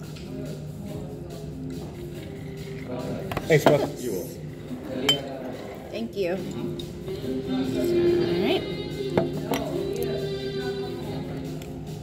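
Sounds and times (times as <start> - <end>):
tableware clinking on table: 5.0 - 5.6, 9.2 - 10.0.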